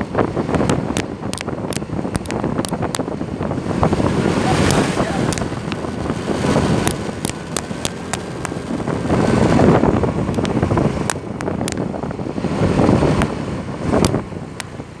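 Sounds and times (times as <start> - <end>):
wind buffeting microphone: 0.0 - 15.0
sharp clicks: 0.6 - 3.1, 4.6 - 5.9, 6.8 - 8.9, 10.3 - 11.9, 14.0 - 14.8.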